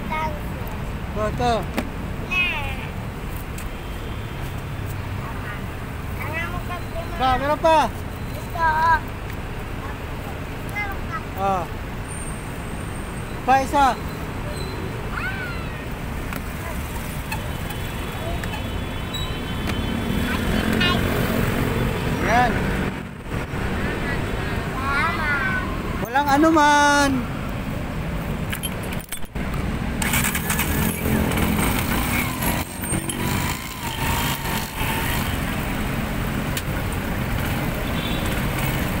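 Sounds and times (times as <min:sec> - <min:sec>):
city traffic rumble: 0:00.0 - 0:39.0
engines and road noise: 0:00.0 - 0:39.0.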